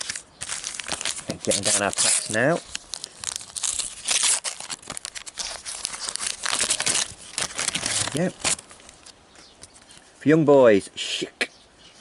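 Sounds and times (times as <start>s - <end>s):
foil packet tearing and crinkling: 0.0s - 9.1s.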